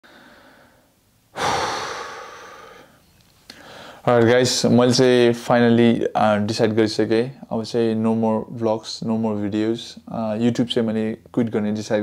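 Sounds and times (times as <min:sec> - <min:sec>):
man breathing: 0:00.0 - 0:04.1
man sighing heavily: 0:00.1 - 0:04.0.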